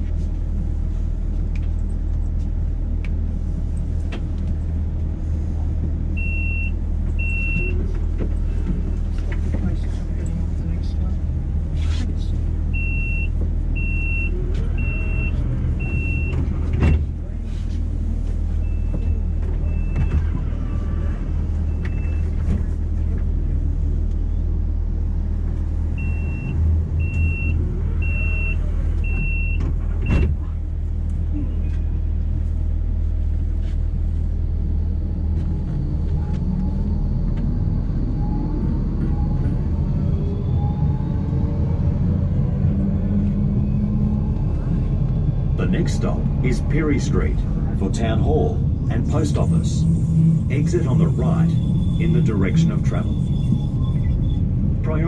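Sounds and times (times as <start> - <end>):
low equipment hum: 0.0 - 55.0
traction motors whining: 34.8 - 55.0.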